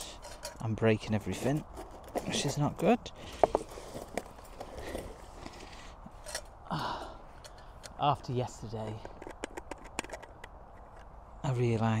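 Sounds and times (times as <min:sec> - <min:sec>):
man sighing: 0:06.6 - 0:07.6.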